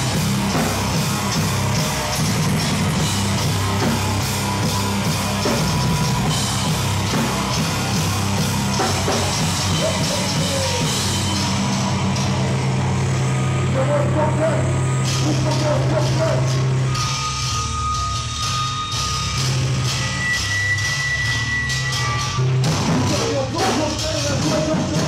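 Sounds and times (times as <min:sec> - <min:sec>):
distorted guitars and bass: 0:00.0 - 0:25.0
high ringing tones: 0:14.8 - 0:22.7.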